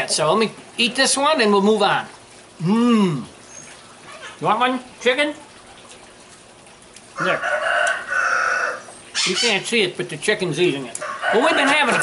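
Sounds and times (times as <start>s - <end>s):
rooster crowing: 7.2s - 8.9s, 11.0s - 12.0s.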